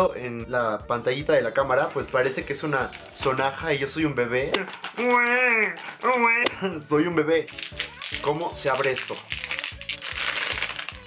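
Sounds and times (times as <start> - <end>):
plastic wrapper crinkling: 8.8 - 11.0.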